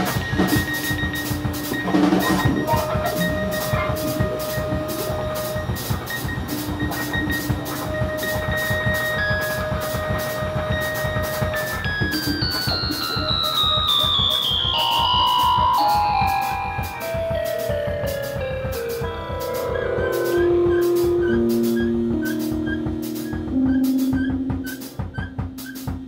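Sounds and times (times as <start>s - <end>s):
experimental band music: 0.0s - 26.0s
high tone stepping downward: 0.0s - 26.0s.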